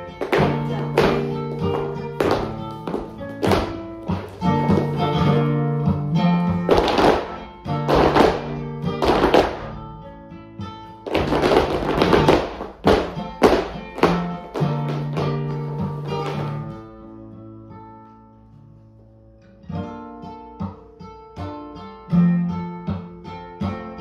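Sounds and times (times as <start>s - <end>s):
dance shoes striking floor: 0.0s - 10.0s, 10.9s - 16.9s
flamenco guitar music: 0.0s - 24.0s.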